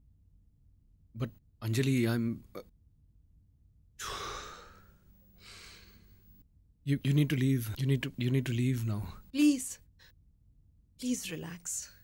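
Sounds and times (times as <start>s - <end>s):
soft breath: 4.0s - 6.4s.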